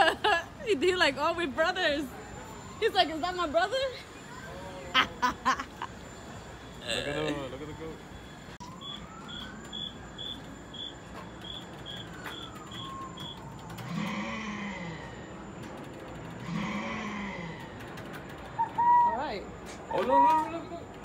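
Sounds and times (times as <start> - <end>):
distant siren: 0.0 - 21.0
drawn-out voice-like calls: 16.2 - 19.3.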